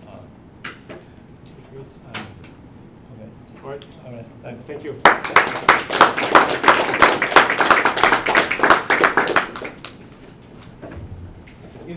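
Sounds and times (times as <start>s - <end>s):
audience applauding: 5.0s - 10.0s.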